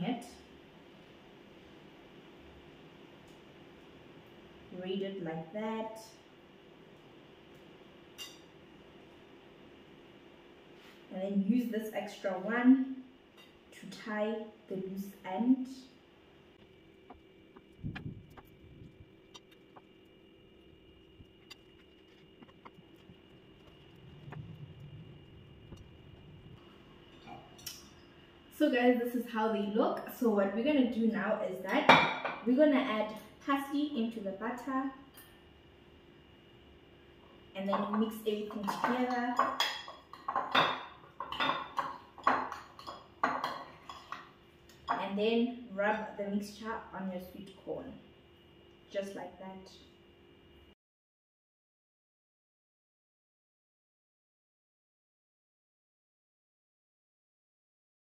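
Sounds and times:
faint hum: 0.0s - 50.8s.

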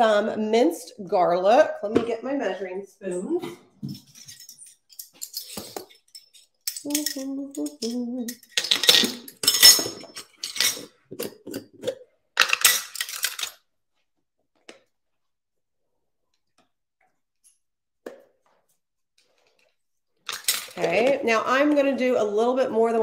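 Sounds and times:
metal measuring spoons clinking: 3.8s - 10.9s.

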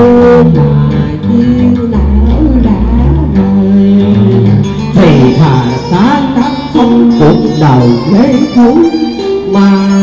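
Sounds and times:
guitar playing: 0.0s - 10.0s.

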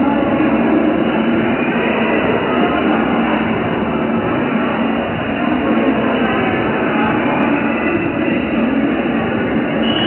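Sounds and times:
sports hall din: 0.0s - 10.0s.

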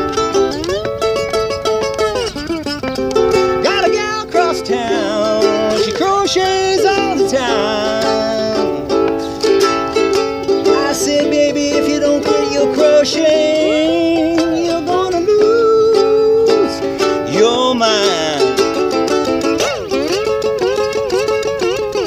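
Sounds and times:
slide ukulele blues: 0.0s - 22.0s.

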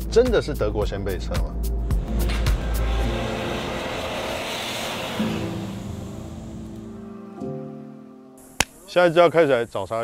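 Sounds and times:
car driving past: 1.8s - 7.5s.

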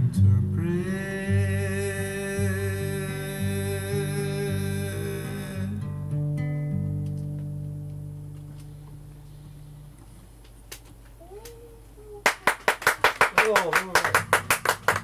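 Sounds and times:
acoustic guitar chord ringing: 0.0s - 8.6s
hand-clapping: 12.2s - 15.0s.

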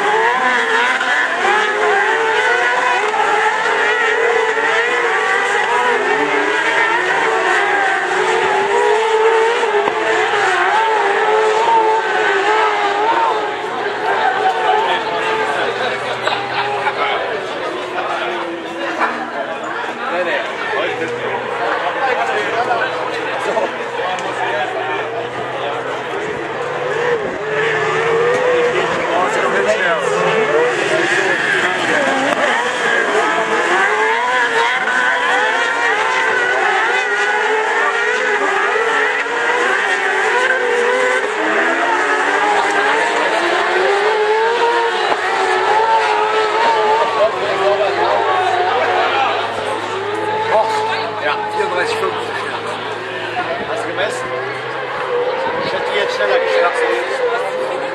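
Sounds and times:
racing cart engines: 0.0s - 57.9s.

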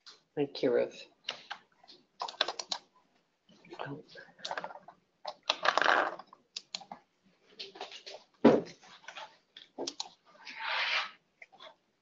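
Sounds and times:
keyboard typing and clicking: 2.2s - 2.9s, 4.4s - 7.0s, 9.6s - 10.2s.

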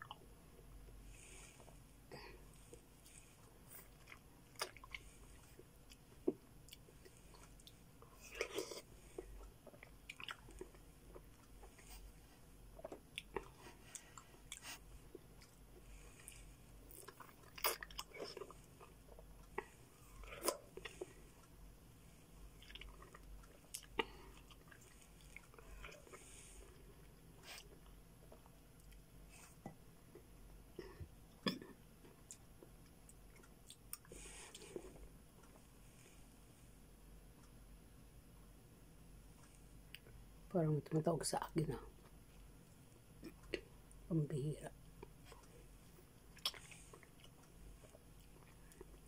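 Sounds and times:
chewing with mouth smacks: 2.6s - 12.2s, 12.8s - 21.5s, 22.5s - 30.3s, 46.3s - 49.0s.

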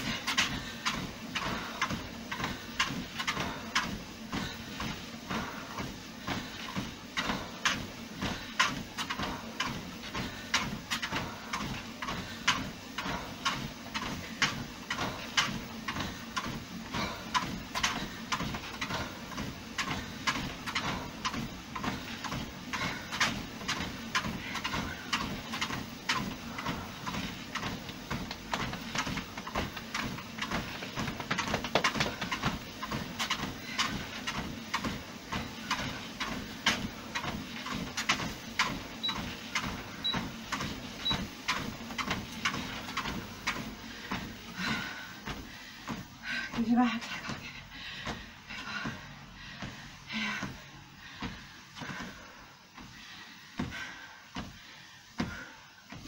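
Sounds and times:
footfalls on treadmill belt: 0.0s - 56.0s
treadmill running hum: 0.0s - 56.0s.

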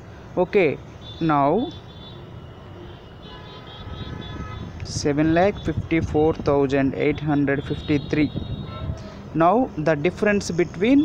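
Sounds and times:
steady hiss and rumble: 4.7s - 8.4s.

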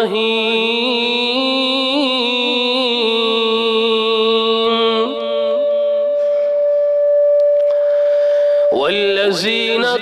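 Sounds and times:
man reciting over loudspeaker: 0.0s - 6.4s, 8.7s - 10.0s
high ringing feedback tone: 5.0s - 10.0s.

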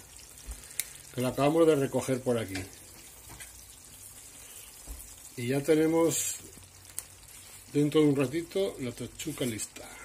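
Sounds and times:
sauce simmering in a frying pan: 0.0s - 10.0s.

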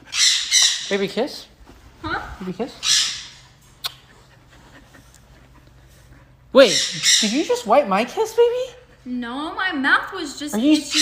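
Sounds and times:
kiss on the cheek: 3.8s - 4.0s.

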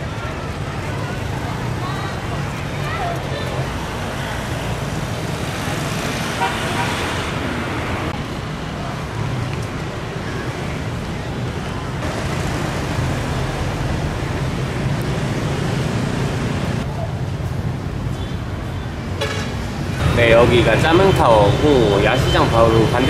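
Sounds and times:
traffic noise: 0.0s - 23.0s
background voices: 20.0s - 23.0s.

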